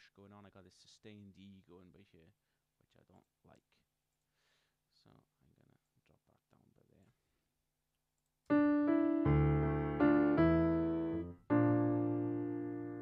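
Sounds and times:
piano chords: 0:08.5 - 0:13.0.

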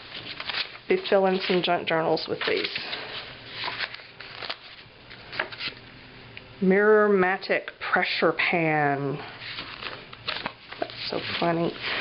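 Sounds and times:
paper sheets rustling: 0:00.0 - 0:05.8, 0:09.4 - 0:12.0.

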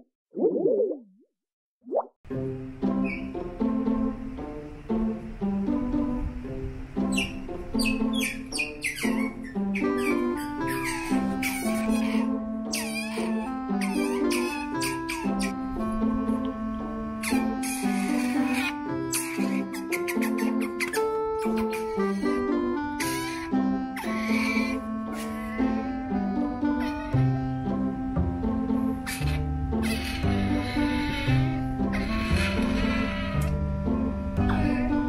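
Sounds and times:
background music: 0:02.3 - 0:35.0
otter squeaky chirp: 0:02.9 - 0:03.4, 0:07.0 - 0:15.6, 0:17.2 - 0:25.8, 0:26.6 - 0:27.3, 0:28.9 - 0:33.6, 0:34.4 - 0:35.0.

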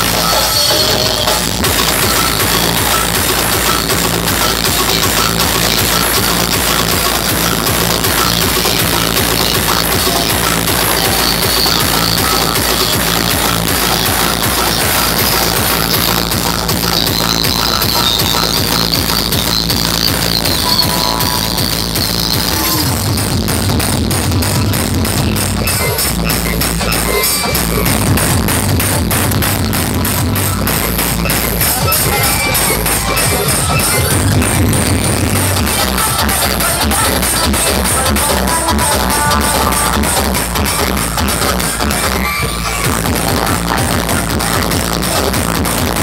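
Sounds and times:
electronic dance music: 0:00.0 - 0:46.0.

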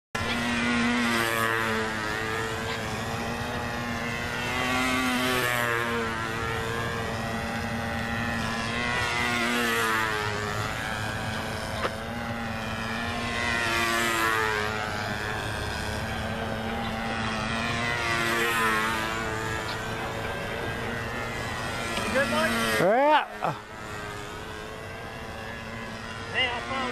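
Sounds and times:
model plane engine passing: 0:00.2 - 0:26.9.

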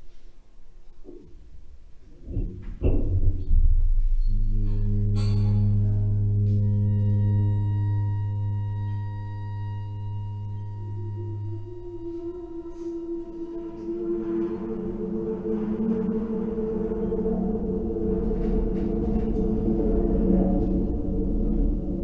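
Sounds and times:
deep steady tone with overtones: 0:02.2 - 0:22.0
grainy sustained sound: 0:04.3 - 0:22.0.

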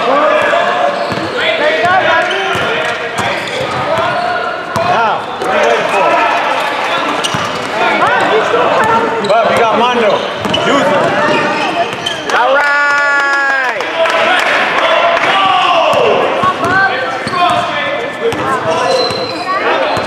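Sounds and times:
sneakers squeaking: 0:00.0 - 0:12.4, 0:15.9 - 0:20.0.

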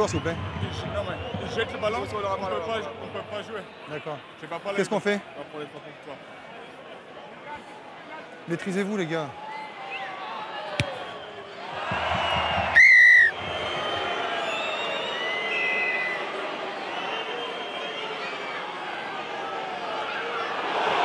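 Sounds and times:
stadium crowd noise: 0:00.0 - 0:21.0
referee's whistle: 0:12.3 - 0:16.4.

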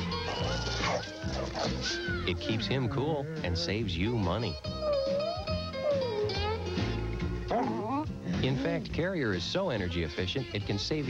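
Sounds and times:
background music: 0:00.0 - 0:11.0
dog barking and yapping: 0:00.1 - 0:02.1, 0:07.5 - 0:08.0.

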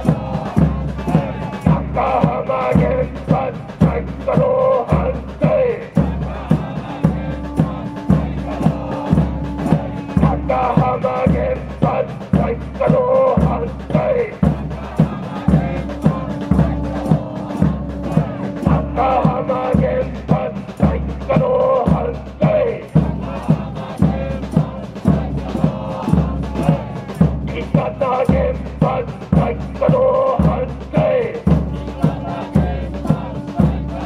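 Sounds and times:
large drum beating: 0:00.0 - 0:34.0
protest chanting over loudspeaker: 0:00.0 - 0:34.0.

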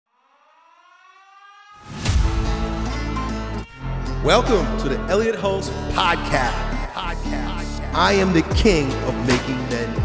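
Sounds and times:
rising siren-like tone: 0:00.1 - 0:05.1
intro music: 0:01.8 - 0:10.0.

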